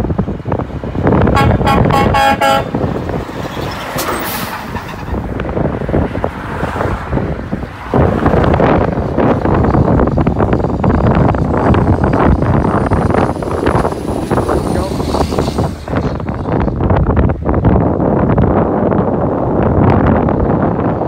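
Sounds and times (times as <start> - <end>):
diesel trucks driving past: 0.0 - 21.0.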